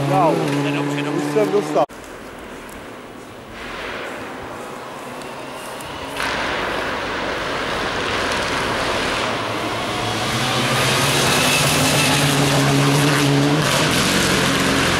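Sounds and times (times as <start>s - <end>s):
rally car engine: 0.0s - 1.9s, 3.6s - 14.9s.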